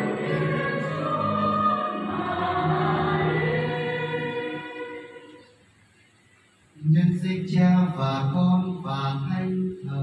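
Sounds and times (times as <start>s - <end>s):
church choir singing a hymn: 0.0s - 5.6s.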